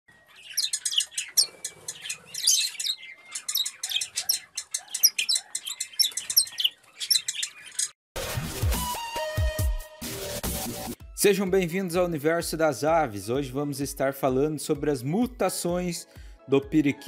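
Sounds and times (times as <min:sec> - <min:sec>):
small birds chirping: 0:00.1 - 0:08.0.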